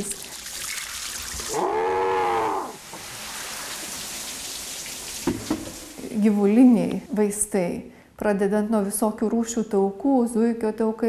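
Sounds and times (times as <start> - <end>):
sauna water hissing: 0.6 - 6.0.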